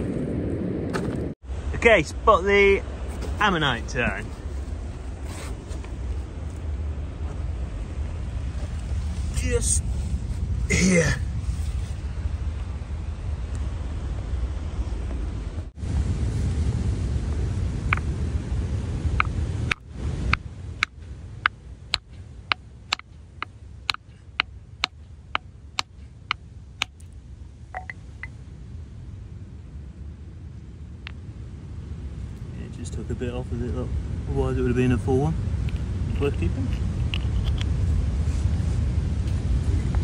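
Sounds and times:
wind on microphone: 0.0s - 1.4s, 3.0s - 23.1s, 27.8s - 40.0s.

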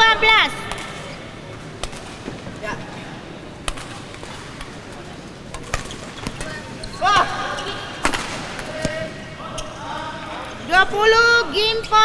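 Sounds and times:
hall background noise: 0.0s - 12.0s
rackets hitting shuttlecock: 0.6s - 2.6s, 3.6s - 9.7s.

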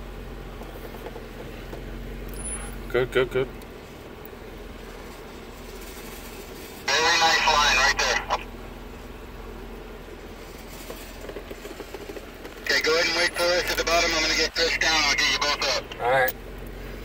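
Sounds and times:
car engine running at low speed: 0.0s - 17.0s
voice over two-way radio: 6.9s - 8.5s, 12.6s - 16.4s.

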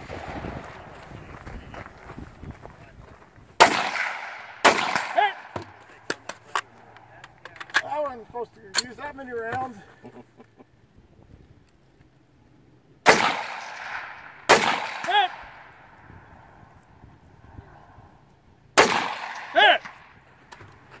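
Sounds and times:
rifle shots with ringing echo: 3.6s - 5.6s, 13.0s - 15.9s, 18.8s - 20.2s.

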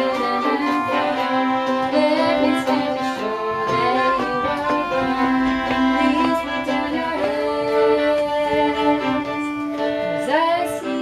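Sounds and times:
fiddles playing long notes: 0.0s - 11.0s.

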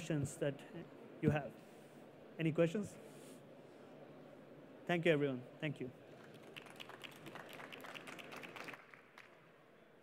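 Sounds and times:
light applause: 6.0s - 10.0s.

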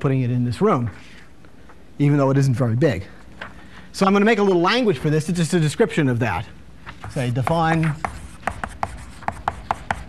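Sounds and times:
chalk tapping and scratching: 6.9s - 10.0s.

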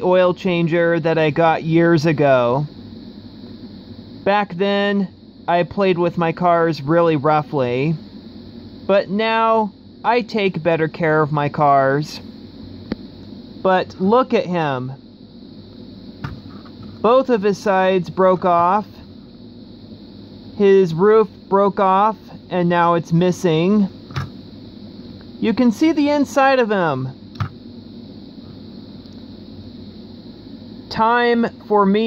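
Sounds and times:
low hiss: 0.0s - 32.0s.

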